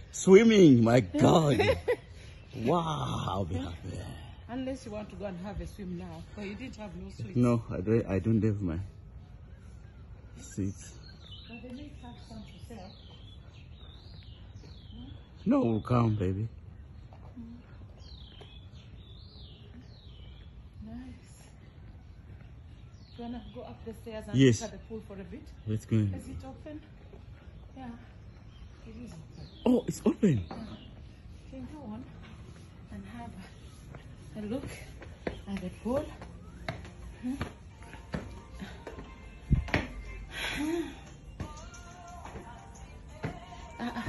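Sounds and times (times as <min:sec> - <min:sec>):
faint background music: 0:00.0 - 0:44.0
bird whistling: 0:33.4 - 0:38.7
footsteps climbing stairs: 0:33.9 - 0:40.0.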